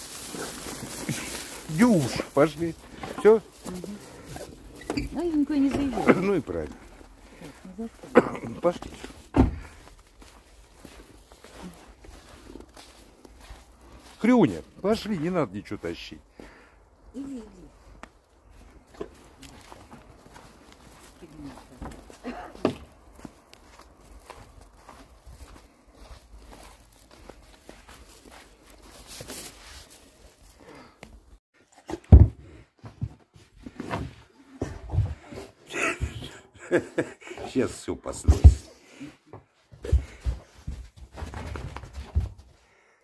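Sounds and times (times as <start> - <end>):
footsteps in snow: 0.0 - 16.0, 17.4 - 31.3.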